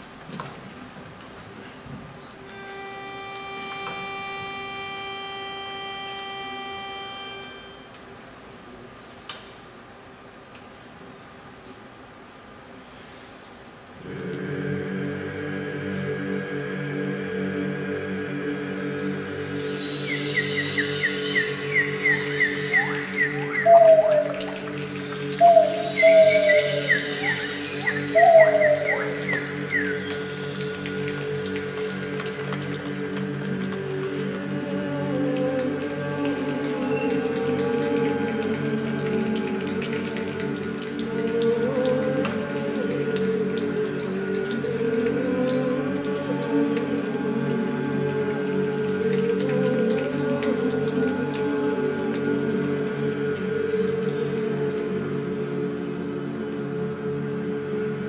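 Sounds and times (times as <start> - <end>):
a cappella chorus chord: 2.5 - 7.9, 14.0 - 58.0
moving melody line: 2.6 - 7.9
swooping calls: 19.5 - 31.0
high bird-like chirps: 19.8 - 24.3, 25.4 - 30.2.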